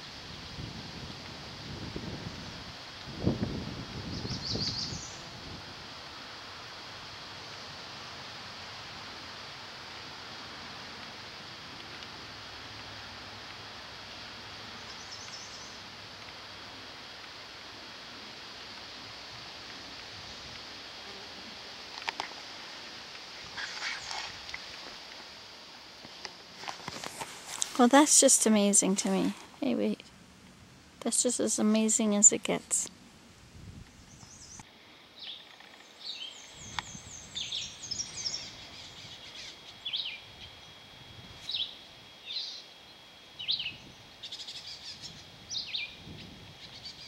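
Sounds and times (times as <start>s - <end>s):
steady outdoor hiss: 0.0s - 47.0s.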